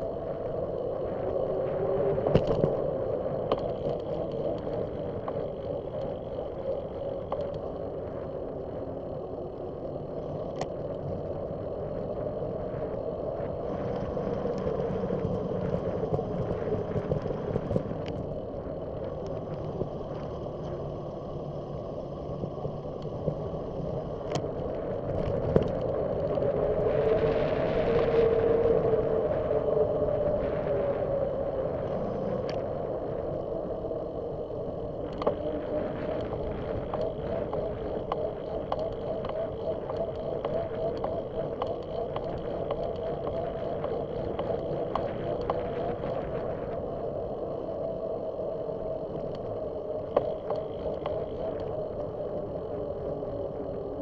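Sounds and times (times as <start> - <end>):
wind on microphone: 0.0 - 54.0.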